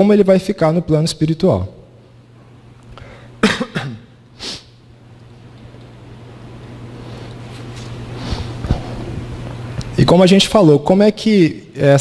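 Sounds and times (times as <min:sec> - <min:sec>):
man coughing: 0:03.4 - 0:04.2.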